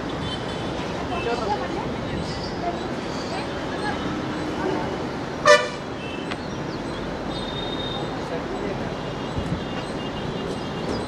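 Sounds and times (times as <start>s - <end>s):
steady rushing background noise: 0.0s - 11.0s
vehicle horn toot: 5.4s - 5.8s.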